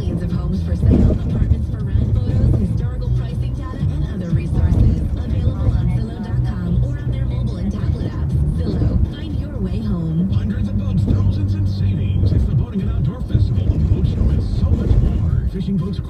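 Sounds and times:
car radio music with singing: 0.0s - 16.0s
road and engine rumble: 0.0s - 16.0s.

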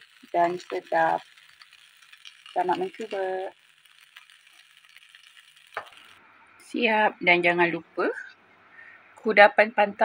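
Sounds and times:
rice sizzling in pan: 0.0s - 6.8s.

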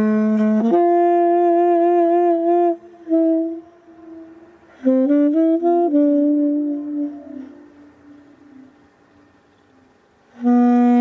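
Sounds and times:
saxophone notes with vibrato: 0.0s - 11.0s.

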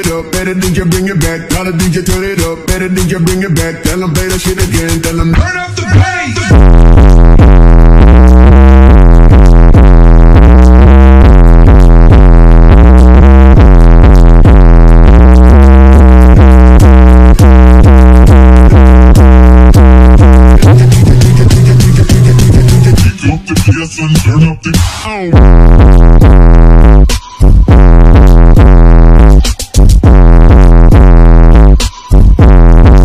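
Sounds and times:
distorted bass-boosted electronic music: 0.0s - 33.0s.

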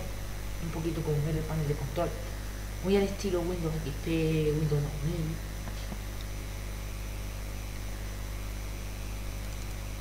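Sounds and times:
electrical mains hum with hiss: 0.0s - 10.0s.

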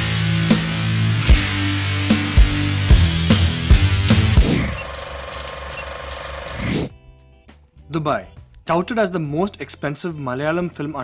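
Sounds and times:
film projector clatter: 4.7s - 6.8s.

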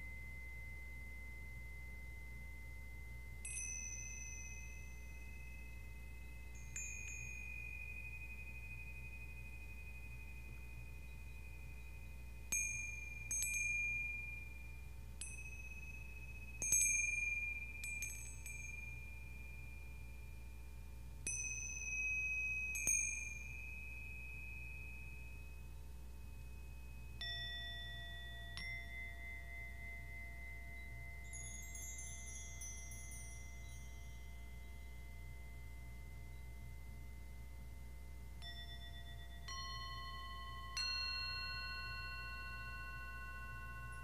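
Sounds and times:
metal chimes ringing: 0.0s - 44.0s.

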